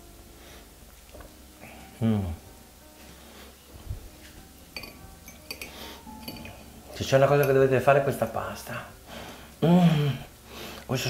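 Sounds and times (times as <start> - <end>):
fork clinking on ceramic plate: 4.8 - 6.6.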